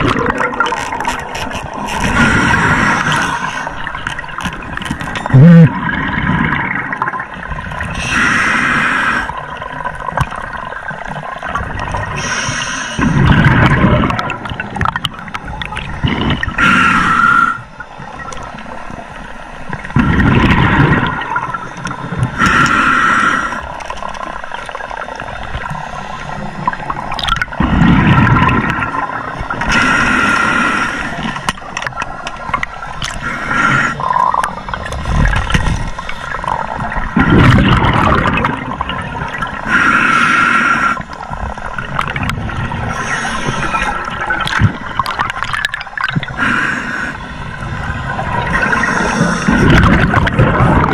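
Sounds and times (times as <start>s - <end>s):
exhaled bubbles rumbling: 0.0s - 8.1s, 9.3s - 12.3s, 13.0s - 16.8s, 17.8s - 22.6s, 23.7s - 29.9s, 33.9s - 39.7s, 41.1s - 46.4s, 47.4s - 50.9s
hissing regulator inhalations: 12.2s - 13.3s, 42.8s - 44.1s, 48.5s - 49.9s.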